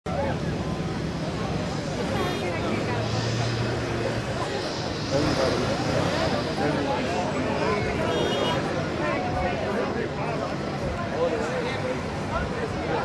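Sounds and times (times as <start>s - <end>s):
crowd talking: 0.0s - 13.0s
distant jet engines rumbling: 0.4s - 9.0s.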